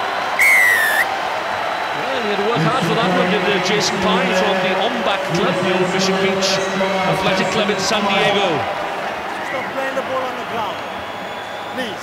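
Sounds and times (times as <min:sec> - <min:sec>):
stadium crowd noise: 0:00.0 - 0:12.0
referee's whistle blast: 0:00.4 - 0:01.1
voices: 0:02.0 - 0:08.9.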